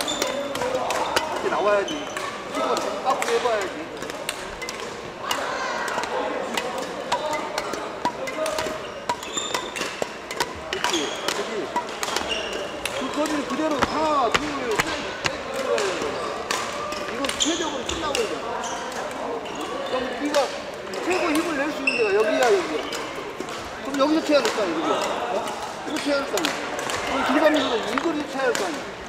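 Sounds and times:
badminton rackets hitting shuttlecocks: 0.0 - 28.8
shoes squeaking on wooden floor: 8.7 - 9.8, 12.1 - 15.4, 17.4 - 18.9.

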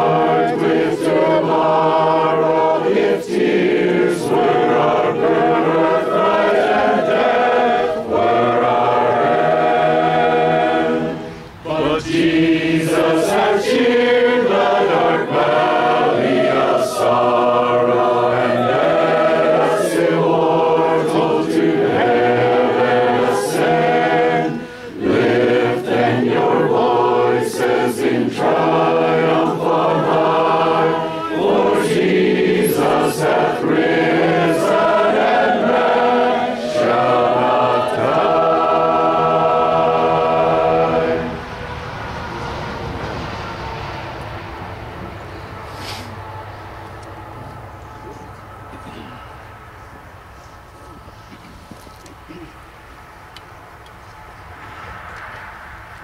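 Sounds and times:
congregation singing a hymn: 0.0 - 45.6.

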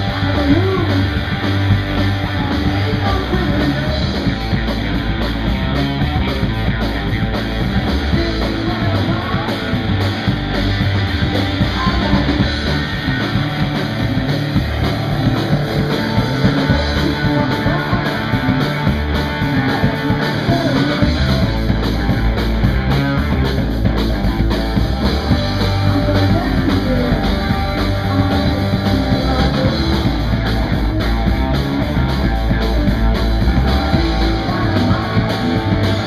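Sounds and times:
blues-rock band playing: 0.0 - 36.0
electric guitar: 0.0 - 36.0
pounding drum kit: 0.0 - 36.0.

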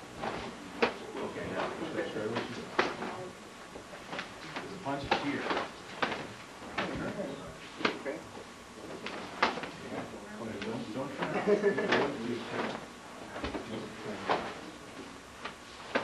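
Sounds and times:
hands and forearms slapping: 0.2 - 1.0, 2.4 - 3.2, 4.1 - 7.2, 9.0 - 10.7, 15.4 - 16.0.

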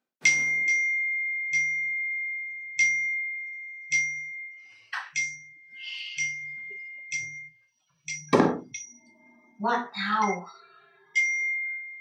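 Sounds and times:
smartphone chiming: 0.2 - 4.4.

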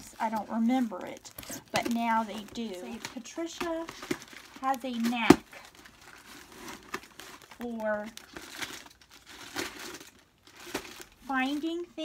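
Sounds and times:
cardboard parcel crackling: 0.0 - 12.0.

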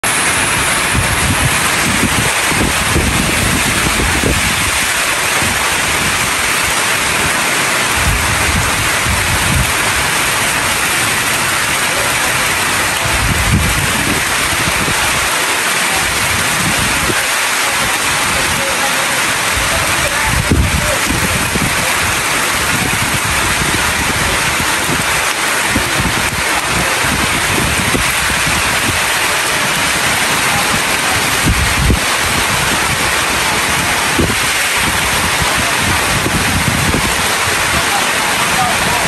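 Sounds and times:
low rumbling: 0.0 - 15.3, 19.3 - 39.0
heavy rain on a metal roof: 0.0 - 39.0.

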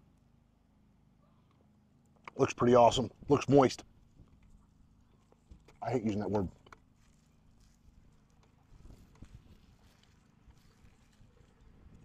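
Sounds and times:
faint chewing: 6.5 - 12.0.

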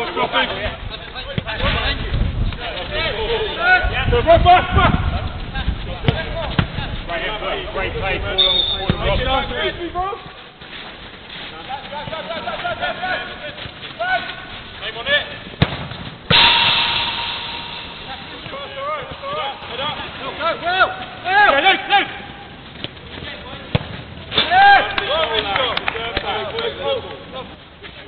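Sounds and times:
loud crash with ringing rattle: 16.3 - 18.6.

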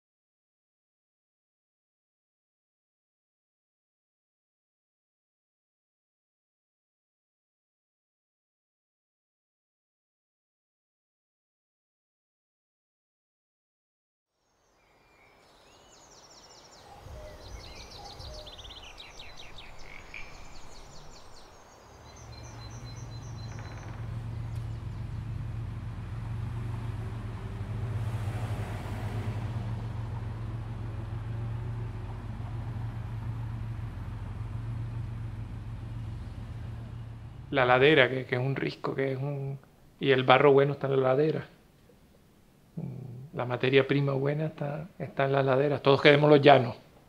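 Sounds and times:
small birds chirping: 14.4 - 27.5, 30.0 - 39.7
steady low drone: 29.4 - 38.3.

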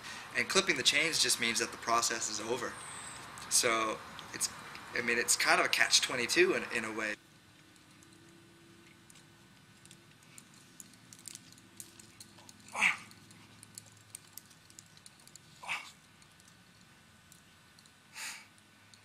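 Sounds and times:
faint scattered clicks: 7.6 - 19.0
person breathing out hard: 18.1 - 18.5.

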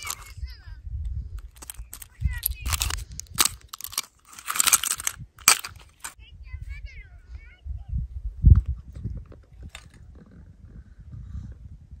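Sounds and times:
wind buffeting microphone: 0.0 - 3.8, 4.8 - 12.0.

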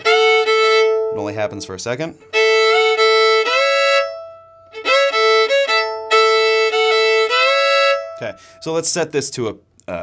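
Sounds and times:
fiddle playing sliding double stops: 0.0 - 8.6.

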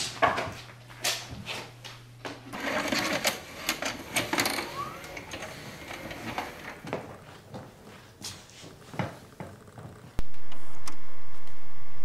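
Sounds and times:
tape mechanism whirring and clicking: 2.6 - 7.0.

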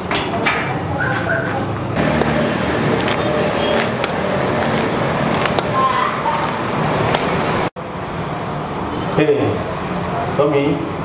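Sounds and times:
traffic noise: 0.0 - 11.0.

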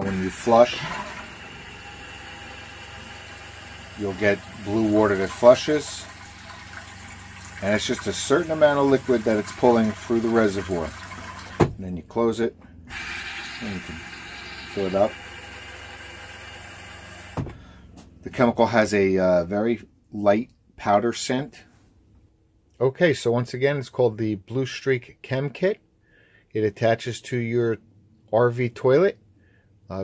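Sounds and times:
toilet flushing: 0.0 - 11.7, 12.9 - 17.4.

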